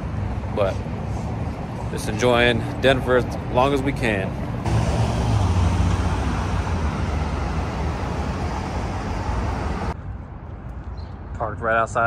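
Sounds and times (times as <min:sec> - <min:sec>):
street background noise: 0:00.0 - 0:12.0
car passing close by: 0:04.6 - 0:10.0.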